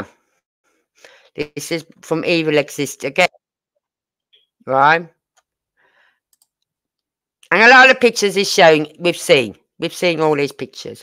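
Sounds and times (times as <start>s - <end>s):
soft breath: 5.8s - 6.3s
computer mouse clicks: 6.3s - 6.7s.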